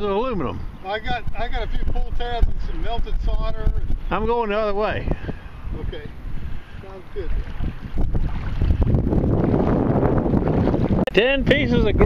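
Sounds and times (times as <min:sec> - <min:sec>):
wind buffeting microphone: 0:00.0 - 0:12.0
water swishing around wading legs: 0:02.4 - 0:11.6.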